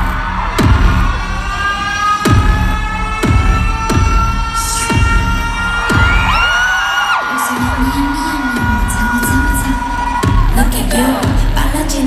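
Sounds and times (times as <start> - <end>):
heavy bass thuds: 0.0 - 6.6, 7.6 - 12.0
crowd screaming and cheering: 0.0 - 12.0
pop concert music: 0.0 - 12.0.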